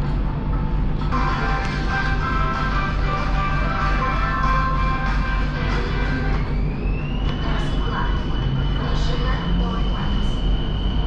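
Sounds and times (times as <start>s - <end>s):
steady low rumble: 0.0s - 11.0s
electric train motors whining: 1.0s - 11.0s.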